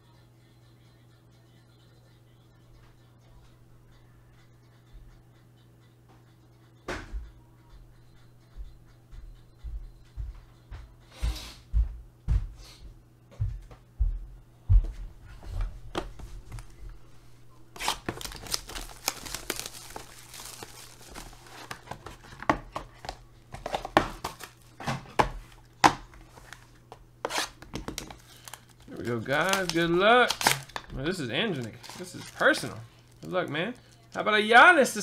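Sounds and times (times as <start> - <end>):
plastic wrap tearing and crinkling: 17.8 - 26.7, 27.3 - 34.2.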